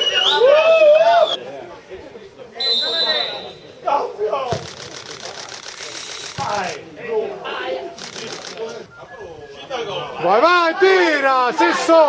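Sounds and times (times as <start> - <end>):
referee's whistle: 0.0 - 1.4, 2.6 - 3.8.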